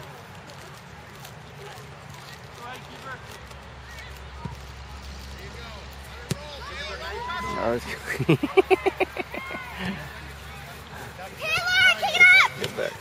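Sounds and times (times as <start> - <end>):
distant voices: 0.0 - 13.0
soccer ball kicked thud: 6.2 - 6.6.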